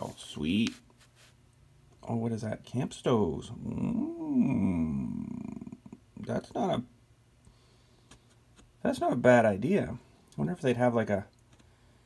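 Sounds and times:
man humming: 3.7 - 6.0.

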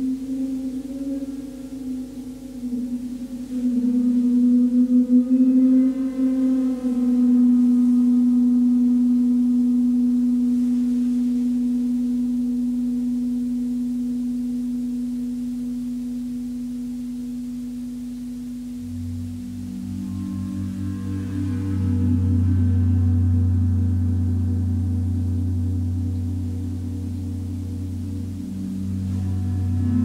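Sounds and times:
deeper gong tone: 0.0 - 16.5, 18.5 - 30.0
gong singing tone: 0.0 - 30.0.

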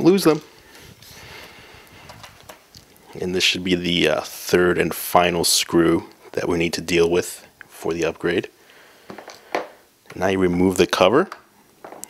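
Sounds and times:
quiet hiss: 0.0 - 12.0.

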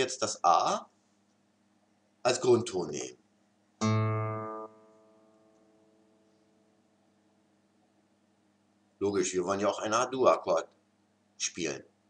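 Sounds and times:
guitar string plucked: 3.8 - 6.2.

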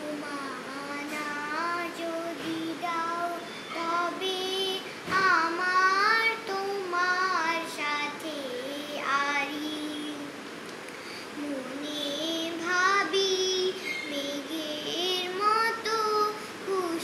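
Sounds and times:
girl singing alone: 0.0 - 10.4, 11.2 - 17.0.

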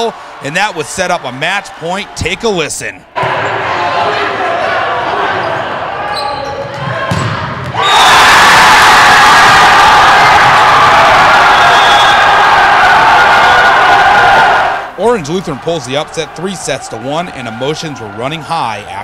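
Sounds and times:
crowd cheering loudly: 0.0 - 19.0
crowd noise in gymnasium: 0.0 - 19.0.

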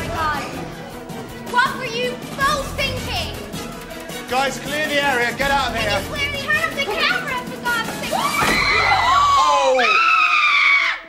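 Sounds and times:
people screaming: 8.1 - 11.0.

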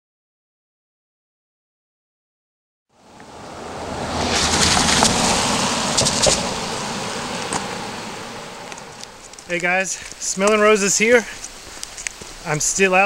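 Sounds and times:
car tyres hissing on wet road: 3.0 - 12.6.

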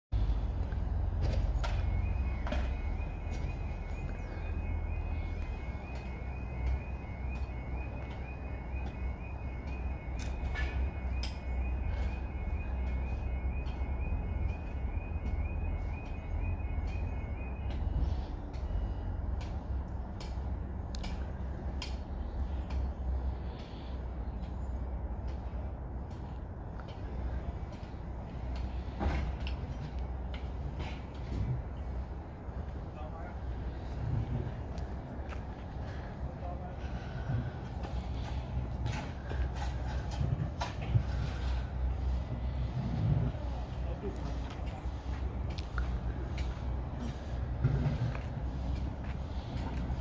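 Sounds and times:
steady low rumble: 0.1 - 50.0
two-tone electronic alarm: 0.5 - 20.0.

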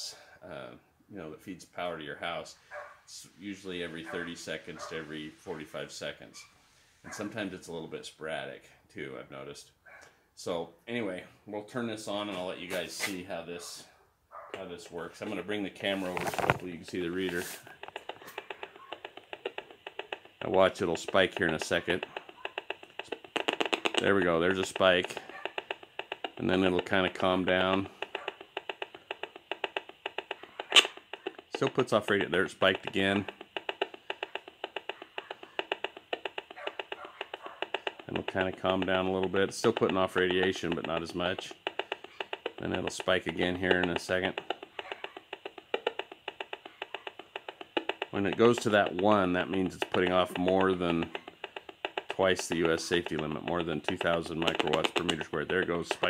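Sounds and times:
rf analyser speaker clicking: 14.5 - 56.0.

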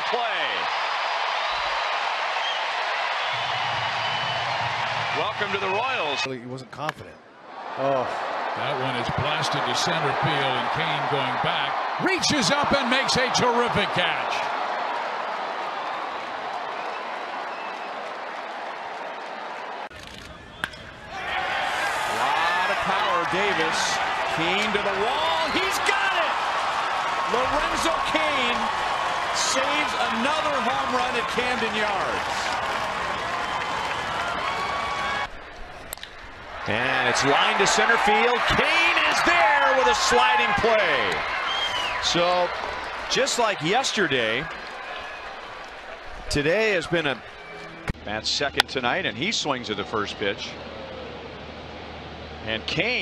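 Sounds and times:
crowd cheering: 0.0 - 6.3, 7.4 - 48.6
man talking: 7.8 - 14.5, 22.2 - 26.4, 27.3 - 28.7, 29.3 - 32.5, 36.7 - 41.2, 42.0 - 42.5, 43.1 - 44.5, 46.3 - 47.2.

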